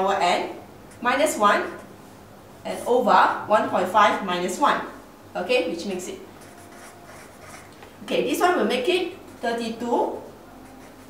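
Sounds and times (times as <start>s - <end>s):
felt-tip marker writing on paper: 6.4s - 7.7s, 10.6s - 11.0s.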